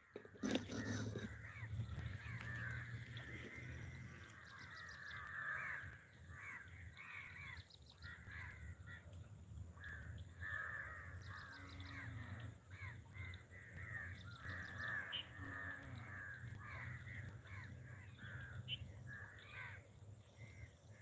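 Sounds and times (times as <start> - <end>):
steady high-pitched whine: 0.0 - 21.0
crows cawing: 0.1 - 9.1, 9.8 - 20.7.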